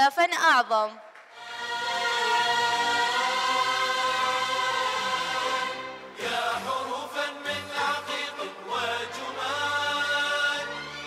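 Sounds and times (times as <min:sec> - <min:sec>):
voices singing held chord: 0:01.4 - 0:11.0.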